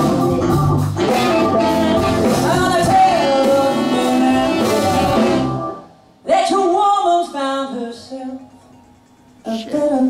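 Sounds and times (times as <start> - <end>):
person singing: 0.0 - 5.6, 9.4 - 10.0
live blues band: 0.0 - 5.9.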